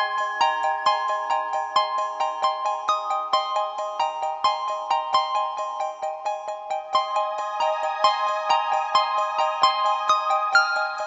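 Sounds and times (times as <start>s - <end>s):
bright background music: 0.0s - 11.0s.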